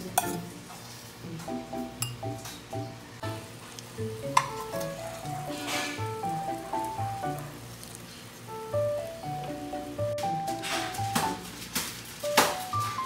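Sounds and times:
gentle background music: 1.3s - 7.7s, 8.5s - 11.6s, 12.2s - 13.0s.

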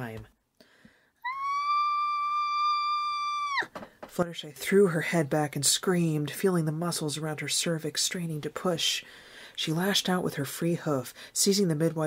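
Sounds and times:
woman screaming: 1.2s - 3.7s.

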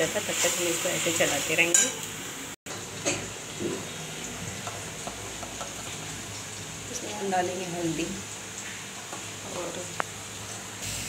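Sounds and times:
masala frying in oil: 0.0s - 11.0s.

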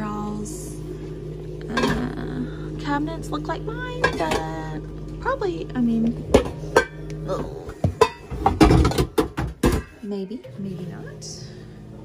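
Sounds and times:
metal pots and pans clanking: 4.0s - 4.6s, 6.3s - 10.2s.

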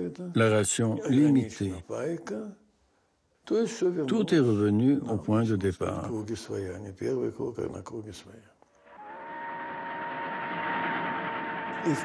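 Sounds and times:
steady held tone: 8.8s - 12.0s.

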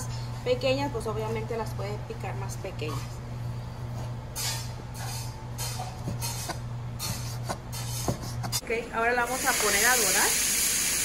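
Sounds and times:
steady low hum: 0.0s - 9.3s.

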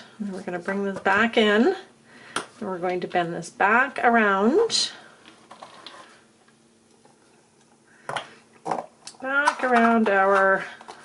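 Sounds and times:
wire rustling on plastic bottle: 5.3s - 6.3s.

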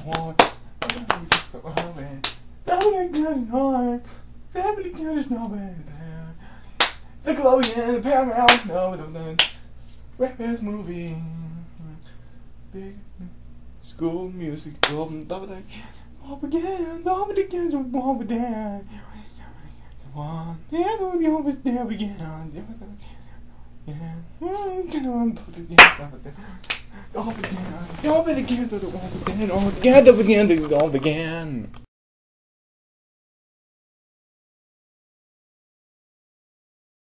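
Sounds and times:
finger snap: 0.0s - 3.2s, 6.8s - 7.8s, 9.4s - 9.6s, 14.8s - 15.1s, 25.8s - 26.9s.

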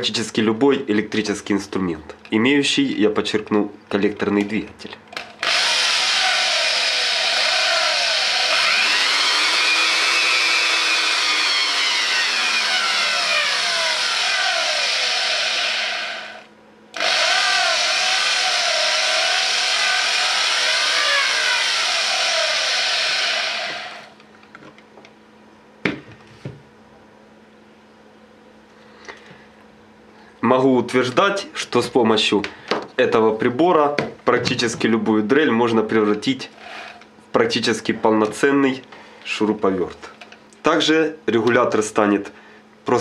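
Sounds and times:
electric drill motor whirring: 5.4s - 24.2s.

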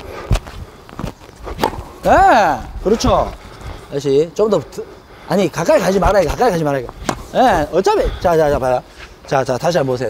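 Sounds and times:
footsteps on hard court: 0.3s - 3.4s, 6.0s - 8.8s
tennis ball impacts: 0.3s - 3.4s, 6.0s - 8.8s.

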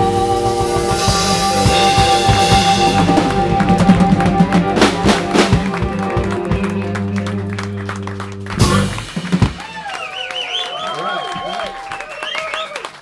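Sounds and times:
drum strokes and cymbals: 0.0s - 6.6s, 8.6s - 9.9s
electric blues band playing: 0.0s - 10.6s.

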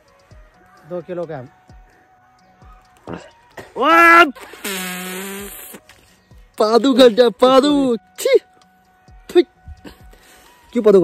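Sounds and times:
man crying out with effort: 3.7s - 4.4s.

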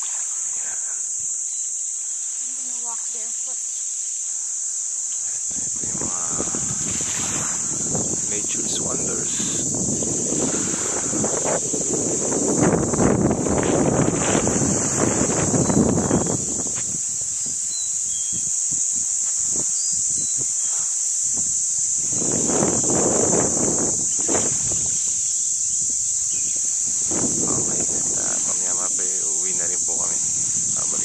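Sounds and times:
high-pitched insect buzz: 0.0s - 31.0s
wind rumble on microphone: 5.3s - 31.0s.

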